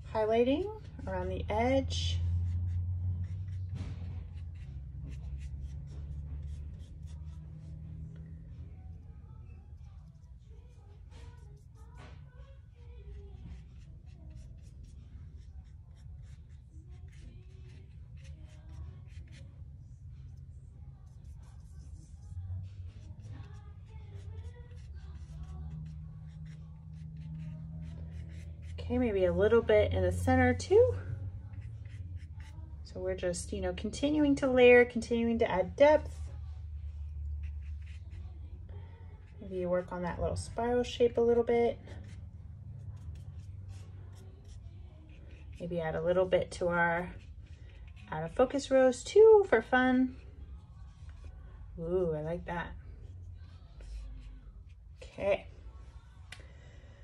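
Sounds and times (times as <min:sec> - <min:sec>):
steady low hum: 0:00.0 - 0:57.0
paintbrush scrubbing paint: 0:00.8 - 0:30.6, 0:31.2 - 0:32.8, 0:36.1 - 0:39.4, 0:41.3 - 0:48.8, 0:53.0 - 0:55.1
paintbrush stroking on paper: 0:20.4 - 0:30.6, 0:31.3 - 0:32.7.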